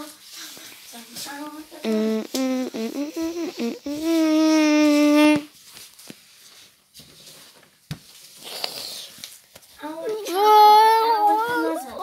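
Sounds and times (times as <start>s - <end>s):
child singing wordlessly: 9.8s - 12.0s.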